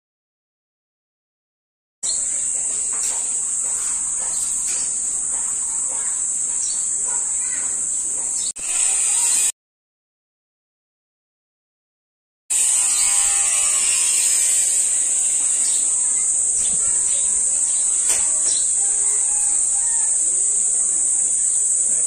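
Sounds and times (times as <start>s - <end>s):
faint bird chirps: 2.0s - 8.6s, 15.2s - 20.2s
high-pitched insect drone: 2.1s - 9.5s, 12.5s - 22.0s.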